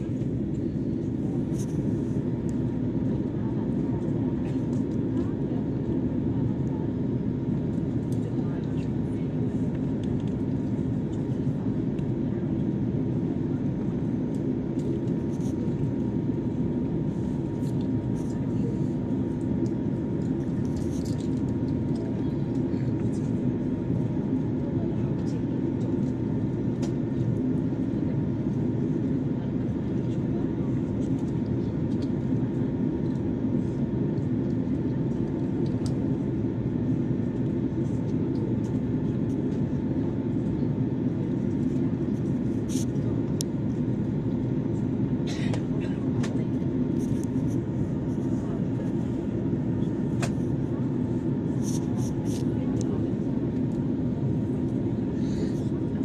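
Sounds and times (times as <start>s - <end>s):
airliner cabin engine rumble: 0.0s - 56.0s.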